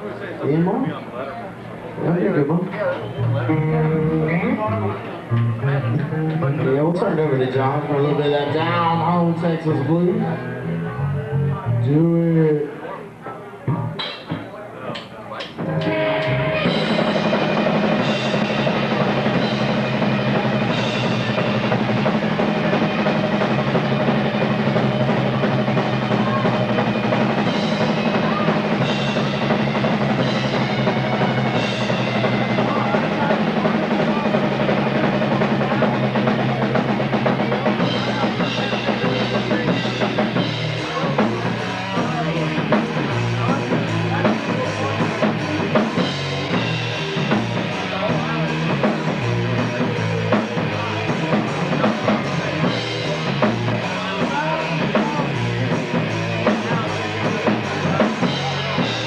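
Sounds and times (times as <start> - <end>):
rock band playing blues: 2.0 - 12.8, 15.4 - 59.0.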